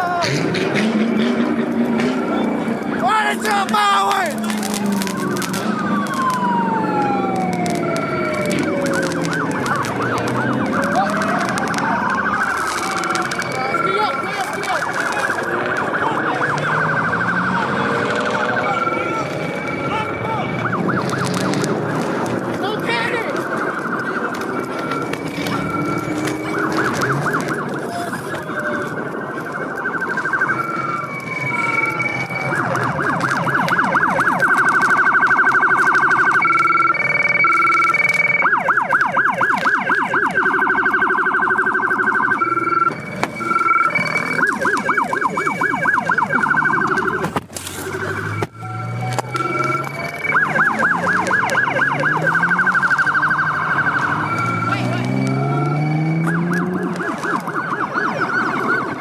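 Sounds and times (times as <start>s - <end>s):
car engine revving: 0.0s - 37.5s, 38.5s - 59.0s
police car sirens: 0.0s - 59.0s.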